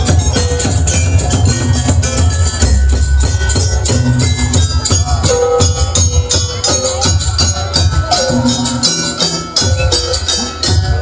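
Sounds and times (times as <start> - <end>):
low drum beat: 0.0 - 11.0
wavering melody line: 0.0 - 11.0.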